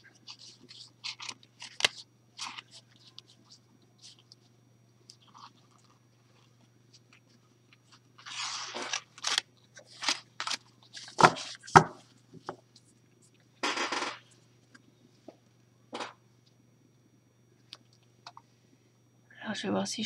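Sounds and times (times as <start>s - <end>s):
cards rustling: 0.2s - 4.5s, 5.1s - 12.8s.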